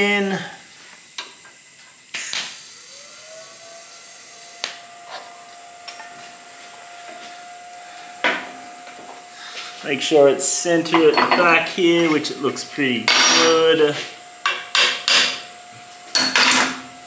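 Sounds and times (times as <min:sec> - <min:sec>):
welding arc hiss: 0:00.0 - 0:05.2
thin steady whine: 0:00.0 - 0:17.0.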